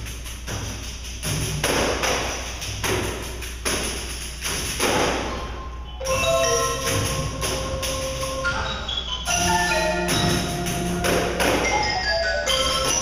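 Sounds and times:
frame drum jingle rattle: 2.2 - 13.0.

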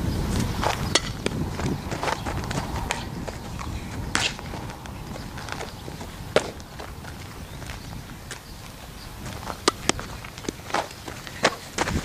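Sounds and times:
running footsteps on dirt: 0.3 - 12.0.

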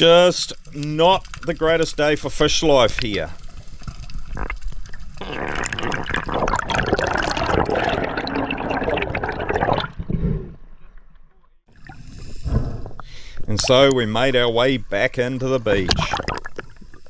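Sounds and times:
water sloshing and bubbling: 0.5 - 17.0.

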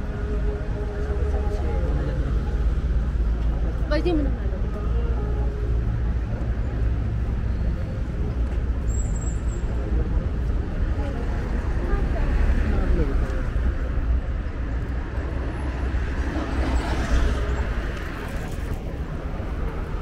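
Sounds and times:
passersby talking: 0.0 - 20.0
passing car traffic rumble: 0.0 - 20.0.

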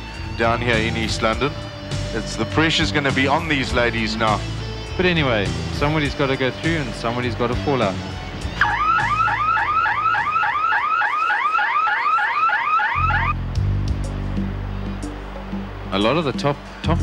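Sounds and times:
low sustained music tones: 0.0 - 11.3, 13.0 - 17.0
electronic whooping tone: 8.6 - 13.5.

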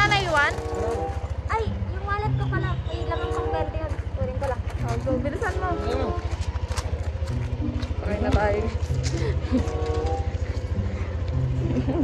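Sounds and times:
motorcycle engine pulling away: 0.0 - 12.0.

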